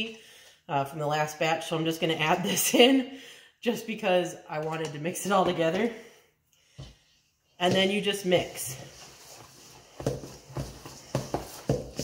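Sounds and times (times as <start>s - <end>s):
scraping dough in bowl: 7.7s - 12.0s.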